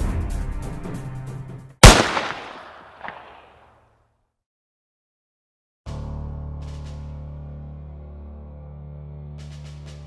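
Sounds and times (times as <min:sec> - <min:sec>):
gunshot with echo: 0:01.8 - 0:03.6.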